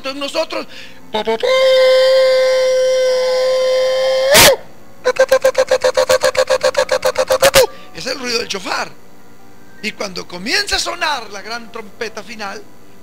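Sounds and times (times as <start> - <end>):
shofar blasts: 1.5 - 4.7.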